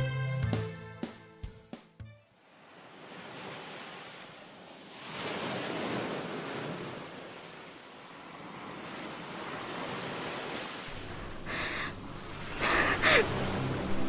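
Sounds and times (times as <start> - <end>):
ocean surf washing on beach: 2.4 - 14.0.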